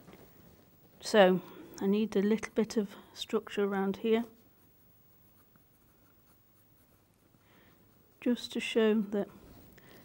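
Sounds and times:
pencil scratching on paper: 4.3 - 8.6.

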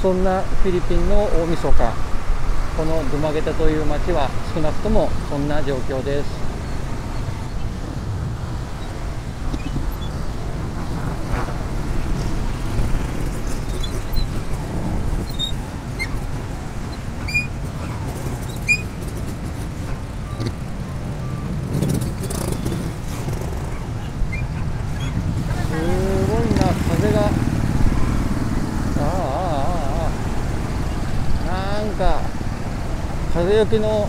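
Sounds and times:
motorcycle engine and road rumble: 0.0 - 34.0
other motorcycles and cars: 0.0 - 34.0
wind on microphone: 0.0 - 34.0.

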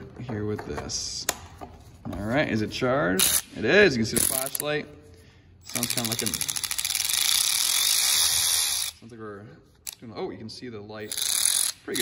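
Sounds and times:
cordless ratchet motor whirring: 5.6 - 9.0, 11.0 - 12.0.

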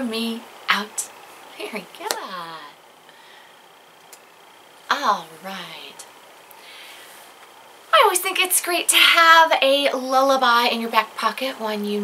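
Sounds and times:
faint soft hiss: 0.0 - 12.0.

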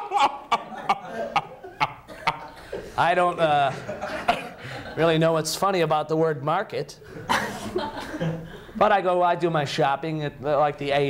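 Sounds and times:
audience laughing: 0.0 - 3.0, 3.6 - 5.0, 7.1 - 8.8.

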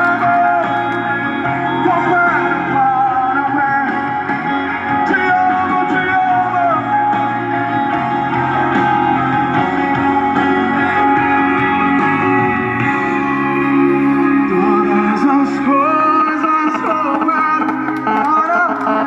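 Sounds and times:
song with guitar and singing: 0.0 - 19.0.

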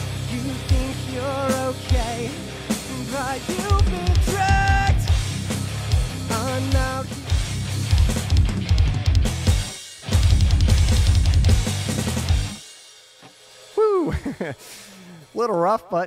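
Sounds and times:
rapid kick drum strokes: 0.0 - 14.5
metal band playing: 0.0 - 16.0
man's voice: 0.1 - 5.2, 6.2 - 7.2.

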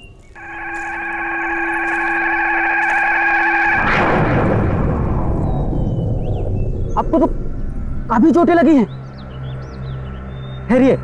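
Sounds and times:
broad crash: 0.4 - 8.1
synthesized chord: 0.4 - 10.5.

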